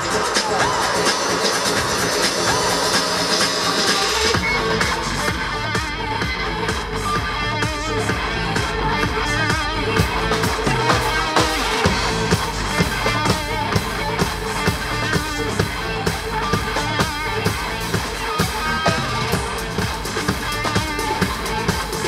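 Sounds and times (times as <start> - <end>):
drum kit steady beat: 0.0 - 22.0
electric guitar: 0.0 - 22.0
electronic keyboards: 0.0 - 22.0.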